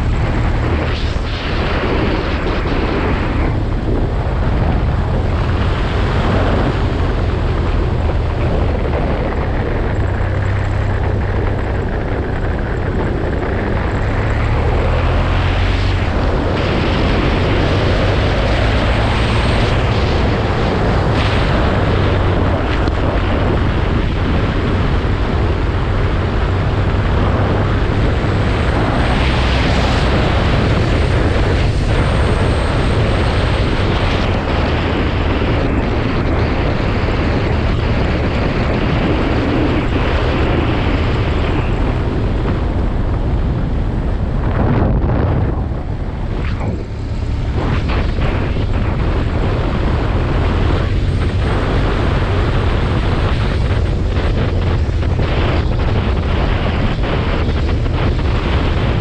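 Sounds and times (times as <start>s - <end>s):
motorcycle engine drone: 0.0s - 59.0s
wind noise: 0.0s - 59.0s.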